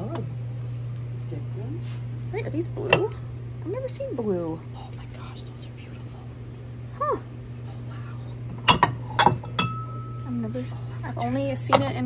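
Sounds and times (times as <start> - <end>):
low hum: 0.0 - 12.0
china bowls clinking: 8.5 - 12.0.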